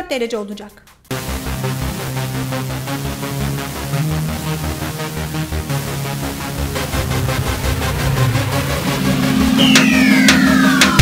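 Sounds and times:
electronic background music: 0:00.0 - 0:11.0
low synth note: 0:01.1 - 0:11.0
falling sweep effect: 0:04.3 - 0:11.0.

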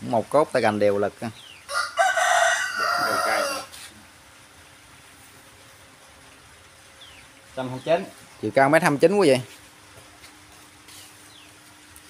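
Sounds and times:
rooster crowing: 0:01.7 - 0:03.8.

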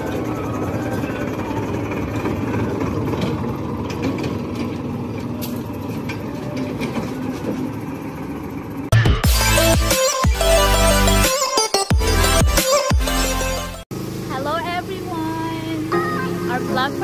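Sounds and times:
tractor engine passing by: 0:00.0 - 0:08.9.

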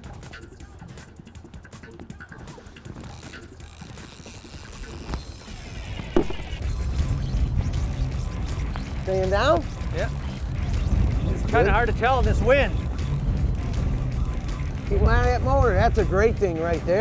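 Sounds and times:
rough water: 0:00.8 - 0:15.4
fishing reel clicking: 0:03.0 - 0:06.8, 0:07.8 - 0:10.9, 0:11.6 - 0:15.0.

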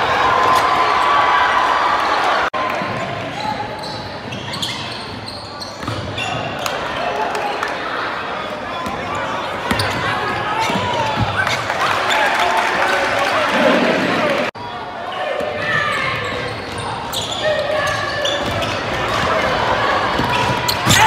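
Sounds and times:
shouts and chatter: 0:00.0 - 0:05.1, 0:06.2 - 0:21.0.

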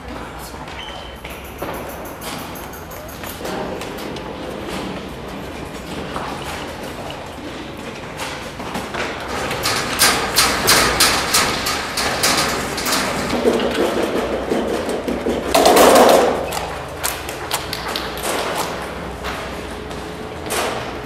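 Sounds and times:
footsteps on metal staircase: 0:00.0 - 0:21.0.

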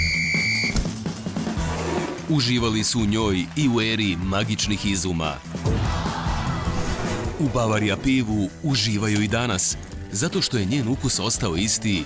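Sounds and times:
referee's whistle blast: 0:00.0 - 0:00.8
background music: 0:00.0 - 0:12.0.

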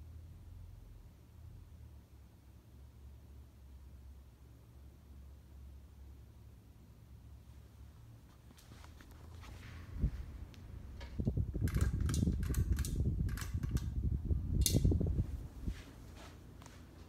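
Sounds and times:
ceiling fan hum: 0:00.0 - 0:17.0
air buffeting microphone: 0:08.4 - 0:17.0
sharp clicks: 0:10.5 - 0:14.0.

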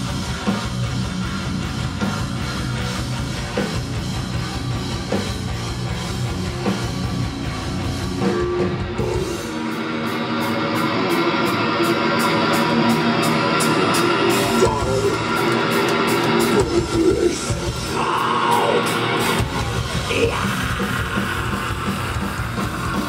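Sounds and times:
heavy metal band playing live: 0:00.0 - 0:23.0
drum and cymbal hits: 0:11.1 - 0:23.0.

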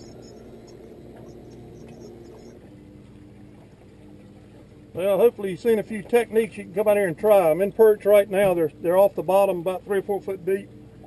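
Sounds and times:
boat motor running: 0:00.0 - 0:11.0.

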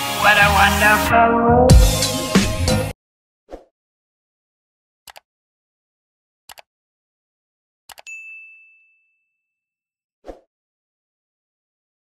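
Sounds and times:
click: 0:06.5 - 0:06.7, 0:07.9 - 0:08.1
notification bell ding: 0:08.0 - 0:09.6.

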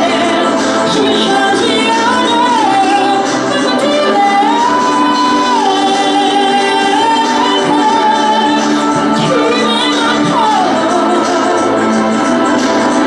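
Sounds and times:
woman singing slow melody: 0:00.0 - 0:12.1.

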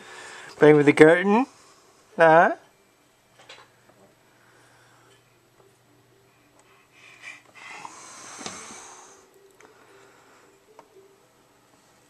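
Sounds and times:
baby breathing and snuffling: 0:06.6 - 0:09.3.

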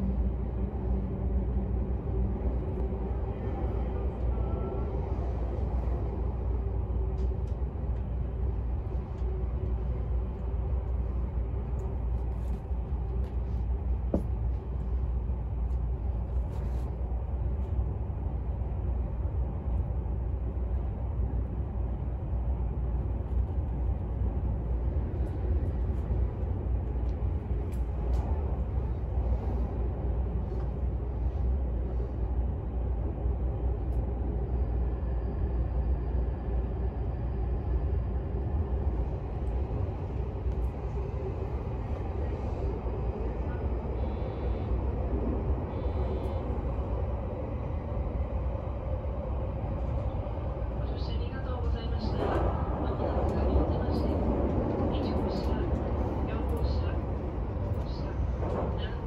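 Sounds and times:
train rumbling in tunnel: 0:00.0 - 0:59.0.

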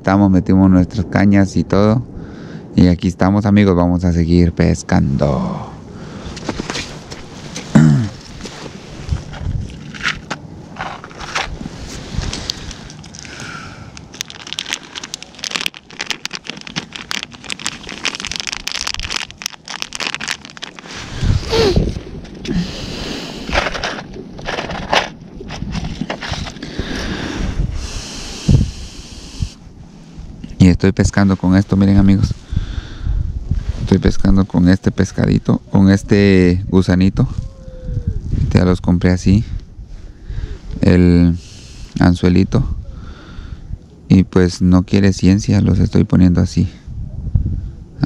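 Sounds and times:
gloves rustling: 0:06.4 - 0:22.2, 0:23.3 - 0:27.1
plastic packet crinkling: 0:12.4 - 0:21.8.

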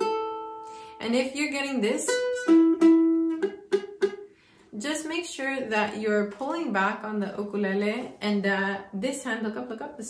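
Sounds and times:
ukulele strings plucked: 0:00.0 - 0:00.9, 0:01.9 - 0:04.3.

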